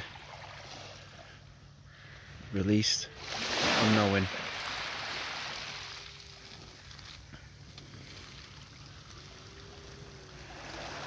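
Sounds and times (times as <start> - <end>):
small waves lapping on shore: 0.0 - 1.4, 2.8 - 11.0.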